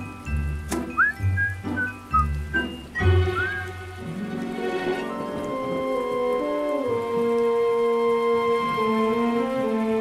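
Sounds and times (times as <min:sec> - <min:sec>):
cartoon rain downpour: 0:00.0 - 0:10.0
slow music with held notes: 0:00.0 - 0:10.0.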